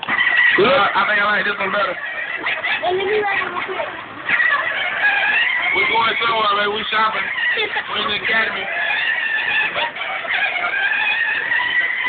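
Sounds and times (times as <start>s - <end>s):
electric ride-on toy motor whining: 0.0s - 12.0s.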